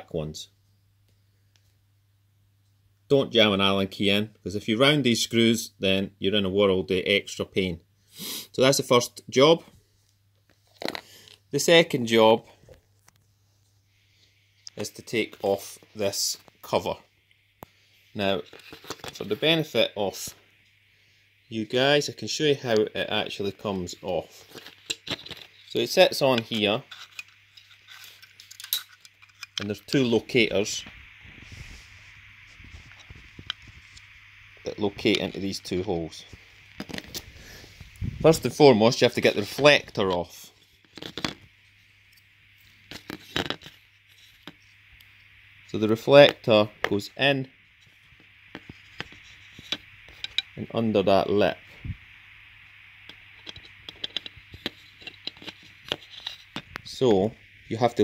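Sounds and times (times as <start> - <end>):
low steady hum: 0.0 - 58.0.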